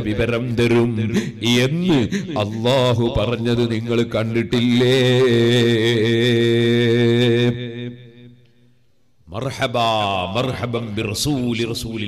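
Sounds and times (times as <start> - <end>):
man chanting through microphone: 0.0 - 8.4, 9.3 - 12.0.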